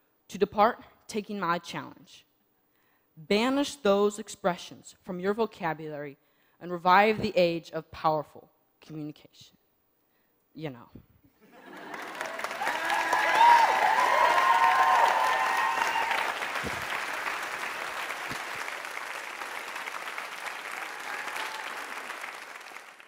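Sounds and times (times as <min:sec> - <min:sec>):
audience applause: 0:11.6 - 0:23.0
audience whooping: 0:11.6 - 0:23.0.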